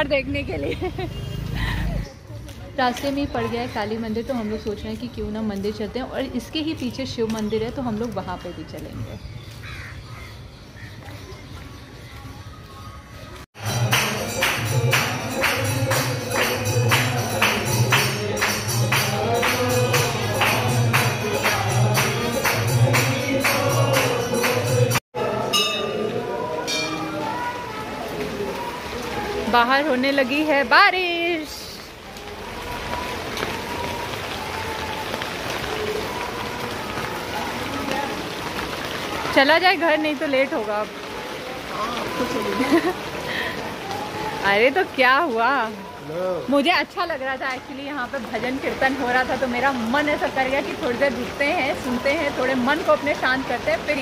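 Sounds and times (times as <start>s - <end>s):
rain on pavement: 0.0s - 25.0s, 27.0s - 54.0s.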